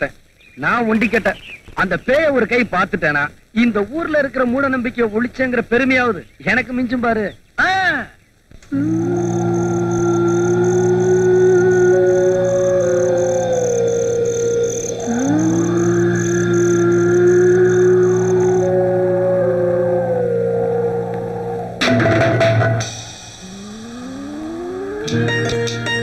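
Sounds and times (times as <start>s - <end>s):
eerie film score: 8.7s - 26.0s
low drone: 8.7s - 26.0s
fast high pulsing tone: 8.8s - 26.0s.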